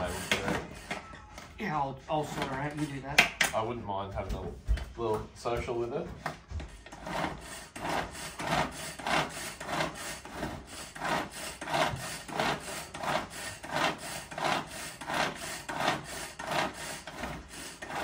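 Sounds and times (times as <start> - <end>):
knife sawing on wooden board: 0.0 - 1.0, 2.1 - 3.2, 6.6 - 18.0.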